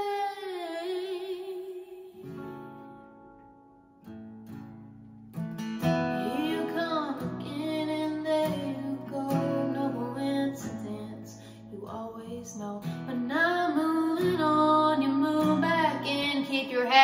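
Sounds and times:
woman singing: 0.0 - 2.6, 6.1 - 17.0
acoustic guitar strumming: 2.2 - 17.0.

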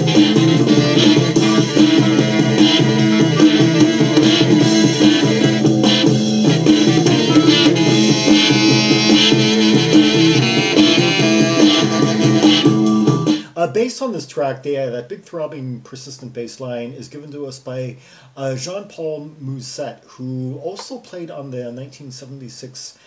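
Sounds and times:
persistent bass line: 0.0 - 13.2
psychedelic rock music: 0.0 - 13.4.

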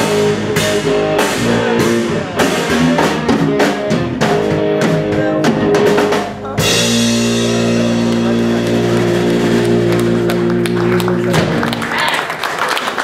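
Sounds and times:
blues band final chord: 0.0 - 11.8
person speaking: 5.0 - 12.1
people clapping: 8.1 - 13.0.

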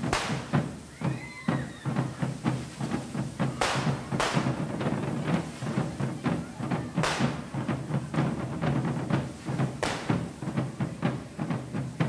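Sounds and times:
loud sharp bursts: 0.0 - 0.9, 3.6 - 4.6, 9.8 - 10.3
drums beating a quick rhythm: 0.0 - 12.0
fireworks hissing and crackling: 0.0 - 12.0.

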